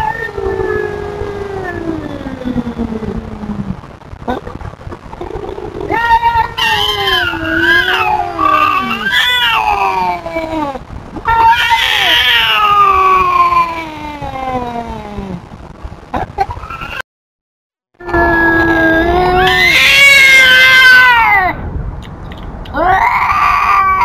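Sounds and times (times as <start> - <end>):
cat yowling: 5.9 - 10.2, 18.0 - 21.6, 22.8 - 24.0.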